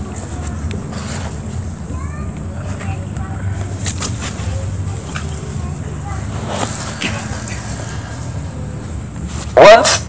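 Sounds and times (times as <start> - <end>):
steady low hum: 0.0 - 9.7.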